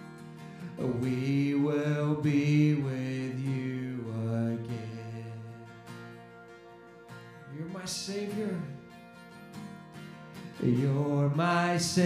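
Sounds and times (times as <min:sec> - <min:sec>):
acoustic guitar: 0:00.0 - 0:12.0
man singing worship song: 0:00.8 - 0:05.7, 0:10.6 - 0:12.0.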